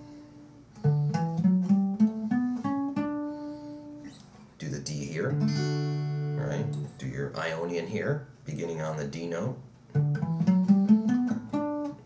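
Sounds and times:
acoustic guitar plucked notes: 0.0 - 4.2, 4.8 - 7.3, 9.3 - 12.0.

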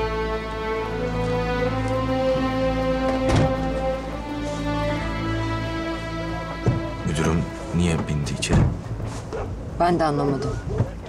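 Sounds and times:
slow sad orchestral score: 0.0 - 11.0.

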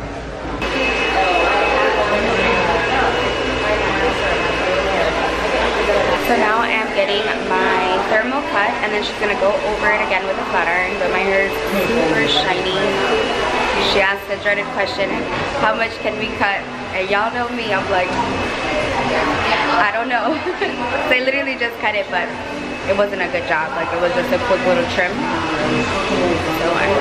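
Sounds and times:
background chatter: 0.0 - 27.0
thin high whine: 0.5 - 27.0.

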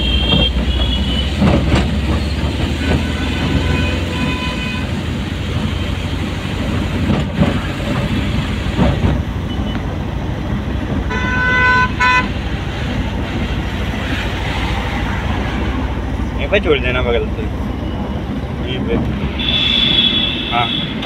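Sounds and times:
vehicle horn toots: 0.0 - 1.4, 2.8 - 5.0, 11.1 - 12.3, 19.4 - 21.0
car engine and road rumble: 0.0 - 21.0.

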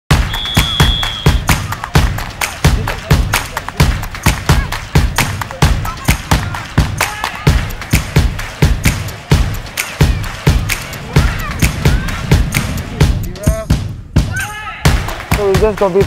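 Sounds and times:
music with steady drum beat: 0.1 - 16.0.

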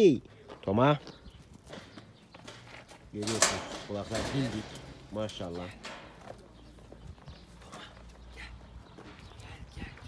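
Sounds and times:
footsteps shuffling on dirt: 0.3 - 10.0.

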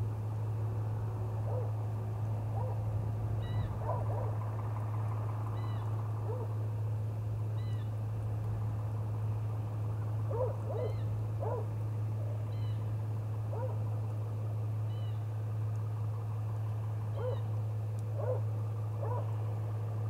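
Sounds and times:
steady low hum: 0.0 - 20.0
short bird-like calls: 12.5 - 12.9.

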